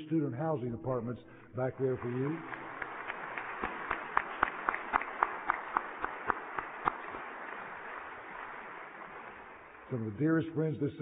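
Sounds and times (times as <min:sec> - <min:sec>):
crowd applauding: 0:01.7 - 0:10.3
hands clapping sharply: 0:01.8 - 0:10.0.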